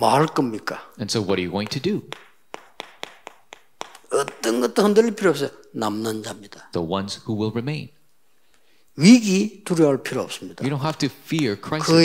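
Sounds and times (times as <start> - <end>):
chalk tapping on chalkboard: 1.5 - 4.6.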